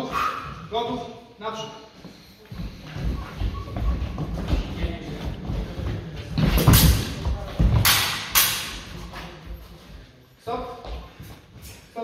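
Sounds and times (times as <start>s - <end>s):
sabre blades clashing: 7.8s - 8.9s.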